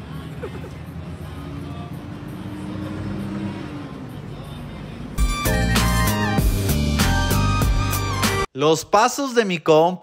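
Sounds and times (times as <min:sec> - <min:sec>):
running vehicle hum: 0:00.0 - 0:07.5.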